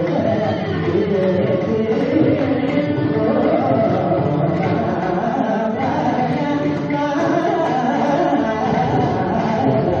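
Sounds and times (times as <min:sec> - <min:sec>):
hand drums rhythm: 0:00.0 - 0:10.0
man singing: 0:00.0 - 0:10.0
violin: 0:00.0 - 0:10.0.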